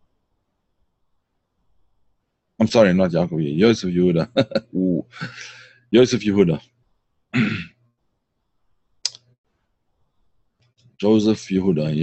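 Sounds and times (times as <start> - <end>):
man clearing throat: 7.3 - 7.8
sharp click: 9.0 - 9.3.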